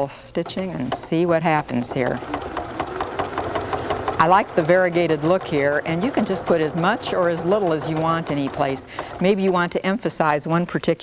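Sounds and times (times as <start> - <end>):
sewing machine ticking clatter: 0.0 - 10.0.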